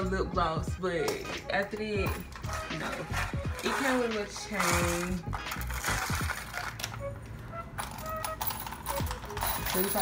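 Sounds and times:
metal chain strap clinking: 1.8s - 7.1s, 7.8s - 10.0s.

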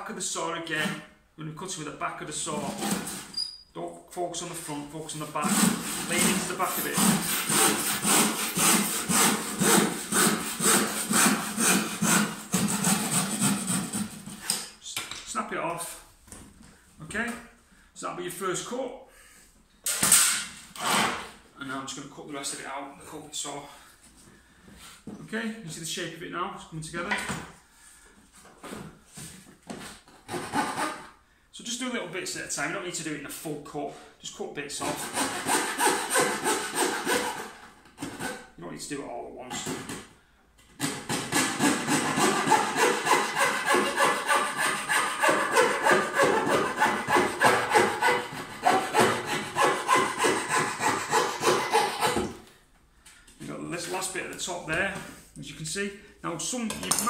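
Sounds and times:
saw cutting wood: 5.3s - 14.2s, 30.2s - 31.1s, 34.8s - 38.5s, 40.8s - 52.4s.

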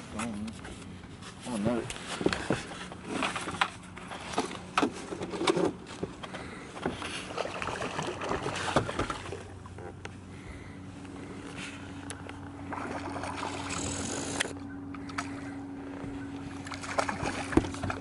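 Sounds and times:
boat motor humming: 0.0s - 18.0s
higher motor hum: 2.6s - 18.0s
fishing reel clicks and rustles: 13.5s - 17.3s.

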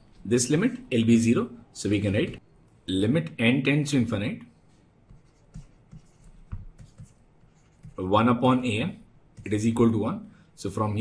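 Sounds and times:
stylus tapping and scratching: 1.9s - 2.5s, 4.6s - 8.3s, 9.2s - 9.8s.

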